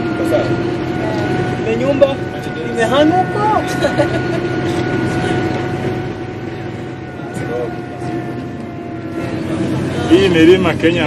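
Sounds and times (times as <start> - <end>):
thin steady whine: 0.0 - 11.0
vehicle engine and road noise: 0.0 - 11.0.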